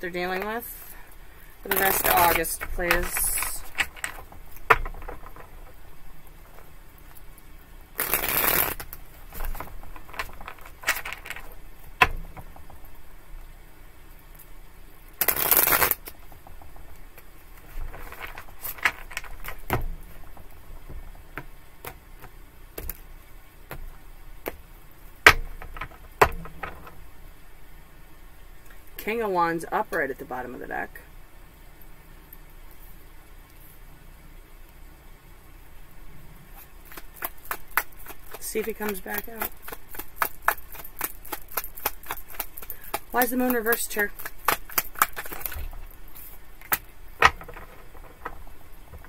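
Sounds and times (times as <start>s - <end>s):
cards riffle shuffling: 1.6s - 5.8s, 8.0s - 12.6s, 15.2s - 23.1s, 36.6s - 49.0s
cards tapping and sliding: 1.7s - 5.8s, 8.0s - 12.7s, 15.2s - 23.1s, 36.6s - 49.0s.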